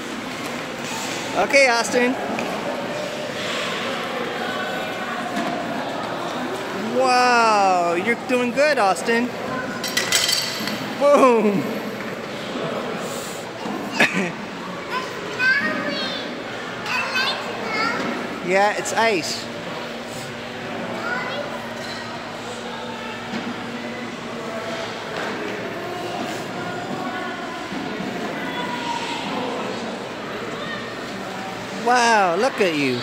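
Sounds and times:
indoor ice rink hubbub: 0.0s - 33.0s
faint distant voices: 19.5s - 33.0s
children calling out: 28.2s - 29.6s.

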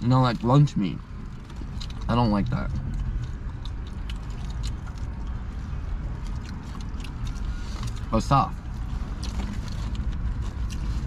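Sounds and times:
chewing on a sandwich: 0.0s - 11.0s
low car cabin rumble: 0.0s - 11.0s.

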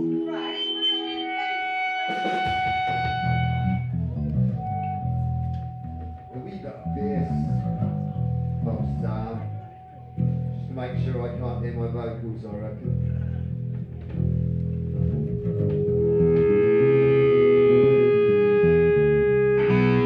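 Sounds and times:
electric guitar through amplifier: 0.0s - 20.0s
bass guitar notes: 1.2s - 20.0s
person talking: 6.2s - 10.0s.

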